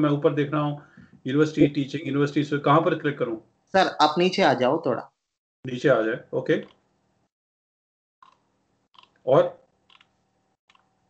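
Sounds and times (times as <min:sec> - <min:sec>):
man saying a word: 0:00.0 - 0:03.4, 0:05.7 - 0:06.6.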